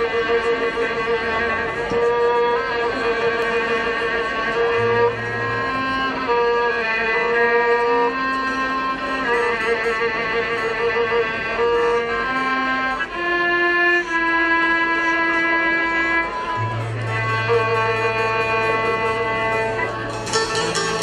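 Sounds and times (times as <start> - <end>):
guitars and lutes holding low notes: 0.0 - 21.0
violin melody: 0.0 - 21.0.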